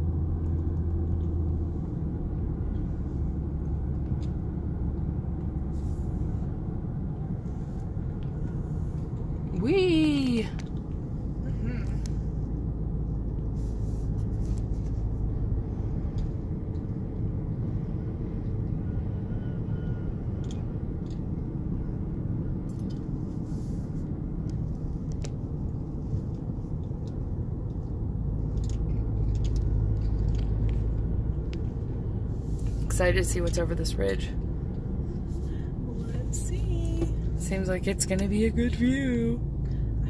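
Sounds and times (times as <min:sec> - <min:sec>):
road and engine rumble in car: 0:00.0 - 0:40.0.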